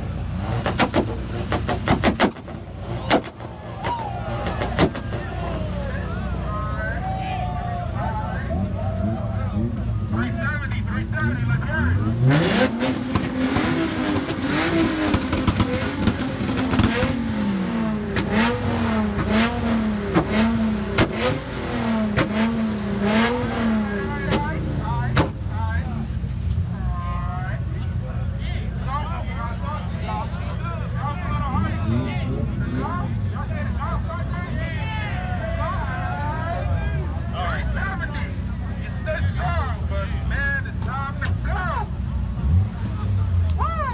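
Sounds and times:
car engine revving: 0:00.0 - 0:26.7, 0:29.1 - 0:34.7, 0:35.8 - 0:43.9
exhaust bangs and pops: 0:00.4 - 0:05.6, 0:12.3 - 0:25.5.

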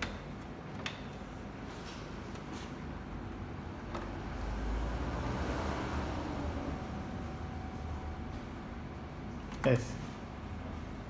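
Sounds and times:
printer mechanical hum: 0:00.0 - 0:11.0.

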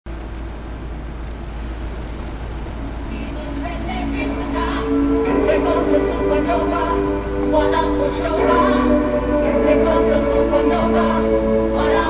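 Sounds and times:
deep low hum: 0:00.1 - 0:09.2
noisy wash: 0:00.1 - 0:12.0.

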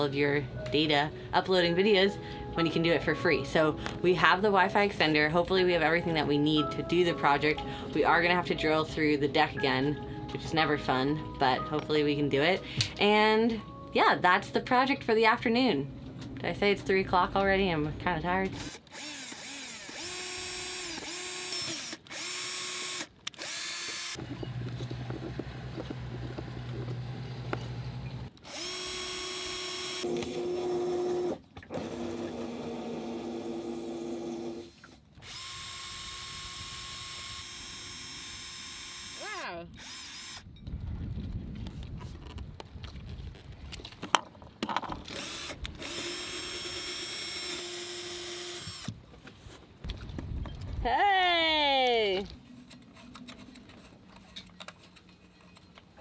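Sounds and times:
cordless drill running: 0:18.6 - 0:24.3, 0:28.4 - 0:40.5, 0:45.1 - 0:49.0.

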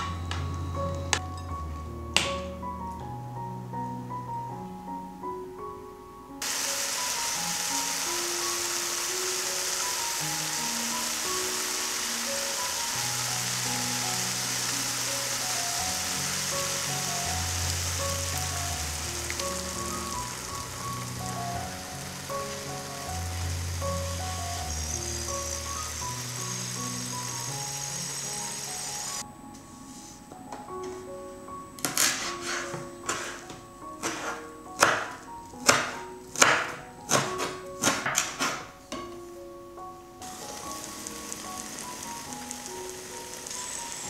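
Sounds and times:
vegetables sizzling in pan: 0:06.4 - 0:29.2, 0:40.2 - 0:44.0.

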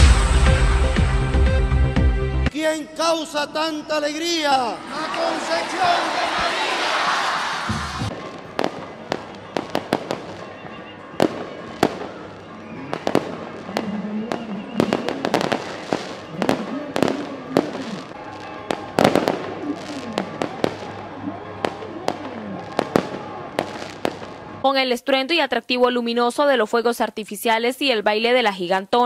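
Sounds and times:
fireworks cracking and banging: 0:07.7 - 0:24.6.

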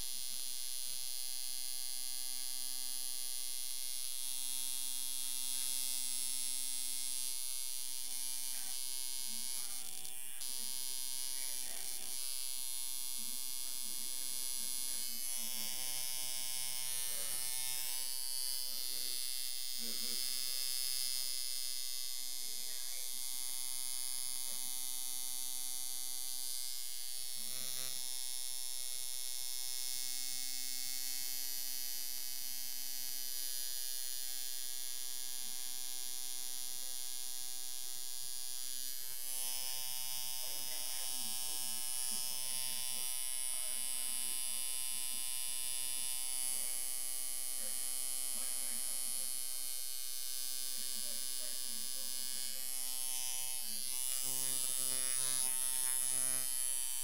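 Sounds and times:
tattoo machine buzzing: 0:00.0 - 0:57.0.

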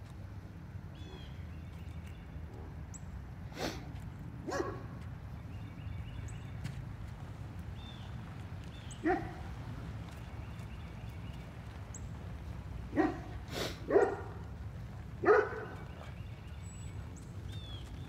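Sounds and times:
dog barking: 0:04.4 - 0:05.0, 0:09.0 - 0:09.5, 0:12.9 - 0:14.4, 0:15.2 - 0:15.9.

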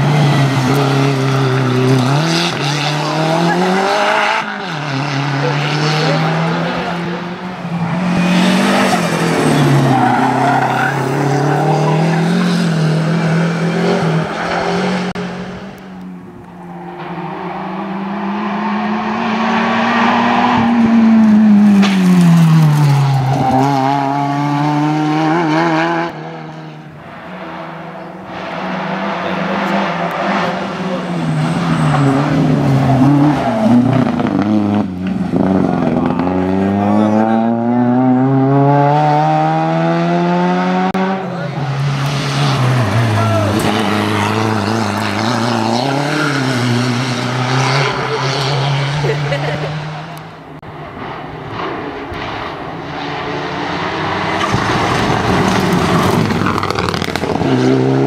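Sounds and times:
race cars passing at speed: 0:00.0 - 0:58.0.

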